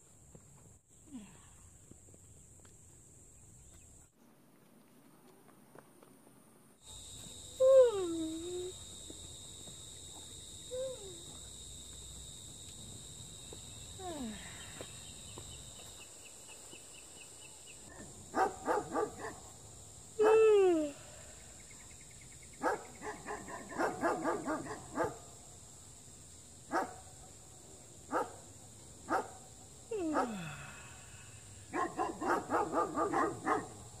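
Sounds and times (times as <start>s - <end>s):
dog barking: 17.9s - 19.5s, 22.6s - 25.3s, 26.7s - 27.0s, 28.1s - 28.4s, 29.1s - 29.4s, 31.7s - 33.8s.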